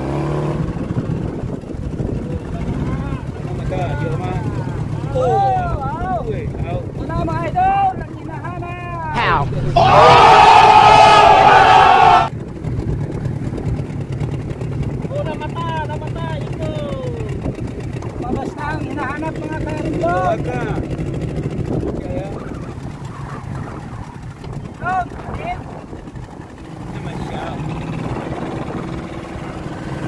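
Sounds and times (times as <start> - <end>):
boat engine humming: 1.2 - 30.0
crowd shouting and cheering: 9.1 - 12.3.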